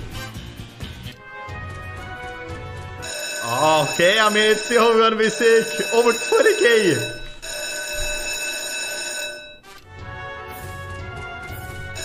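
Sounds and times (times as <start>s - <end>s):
electronic bell jingle: 3.0s - 9.6s.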